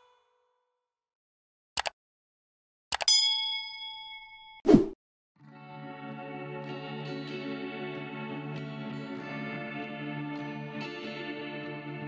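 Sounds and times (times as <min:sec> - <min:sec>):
bell-like ding: 0:03.0 - 0:04.6.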